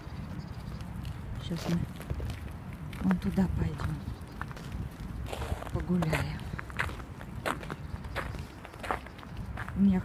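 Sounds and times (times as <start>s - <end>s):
footsteps on frozen dirt: 0.2s - 10.0s.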